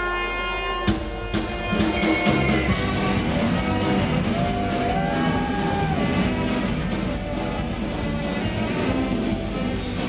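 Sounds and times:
band playing live: 0.0s - 10.0s.

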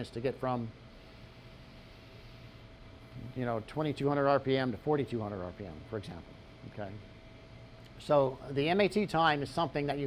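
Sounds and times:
thin steady whine: 0.0s - 10.0s.

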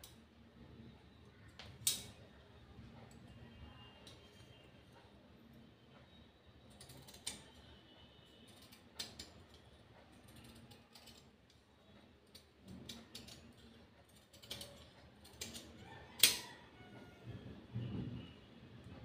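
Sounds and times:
scissors snipping fabric: 6.7s - 7.6s, 8.5s - 11.6s, 12.2s - 16.5s.

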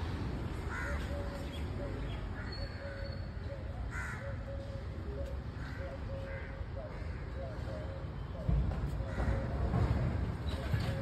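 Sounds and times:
distant bird calls: 0.6s - 11.0s
crow cawing: 0.7s - 1.0s, 3.9s - 4.4s.

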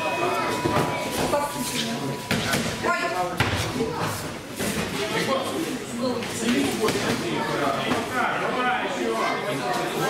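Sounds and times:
voices calling out in echoing hall: 0.0s - 10.0s.

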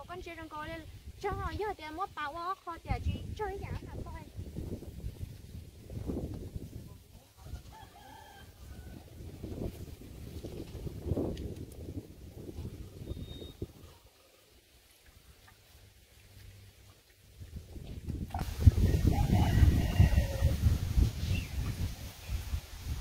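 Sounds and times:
distant rooster crowing: 7.4s - 9.2s, 18.7s - 20.8s.

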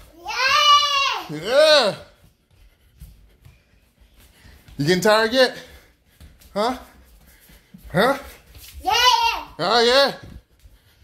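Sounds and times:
footsteps on hardwood floor: 0.0s - 11.0s.

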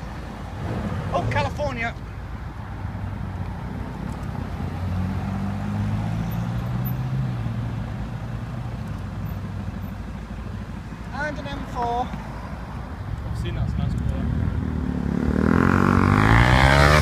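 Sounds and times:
cars driving past: 0.0s - 17.0s
tyre and road noise: 0.0s - 17.0s.

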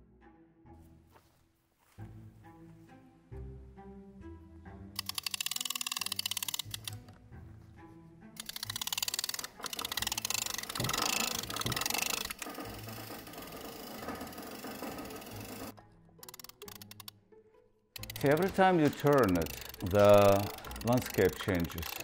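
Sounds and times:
background music of low notes: 0.0s - 22.0s
fast mechanical clicking: 5.0s - 7.1s, 8.4s - 17.1s, 18.0s - 22.0s
dense rattle: 8.4s - 17.0s, 18.0s - 22.0s.

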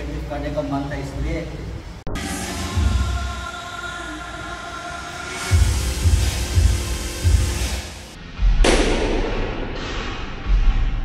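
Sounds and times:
heavy bass beat: 5.5s - 11.0s.

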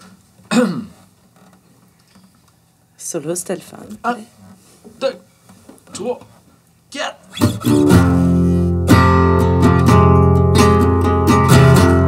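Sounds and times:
faint creaking: 0.0s - 3.0s, 3.6s - 6.6s.

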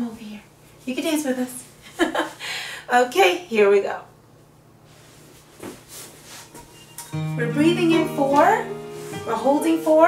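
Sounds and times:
soft rustles on yoga mat: 4.8s - 10.0s.

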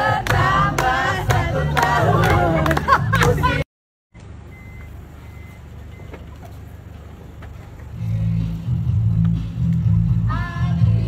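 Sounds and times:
vehicle engine idling: 4.2s - 11.0s.

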